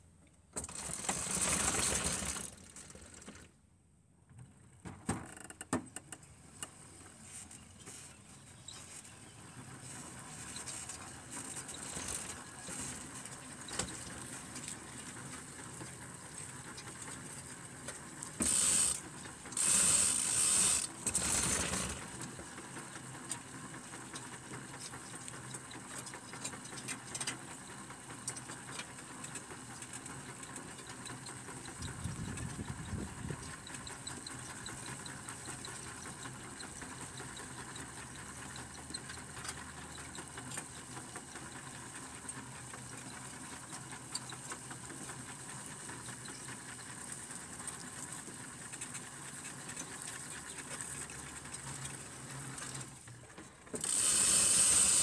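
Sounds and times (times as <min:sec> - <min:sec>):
weeding tool rattling and clicking: 0:00.6 - 0:03.2, 0:18.3 - 0:22.3.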